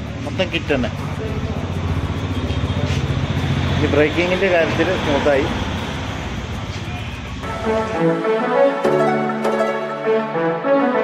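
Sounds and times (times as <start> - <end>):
motorcycle engine idling: 0.0 - 7.8.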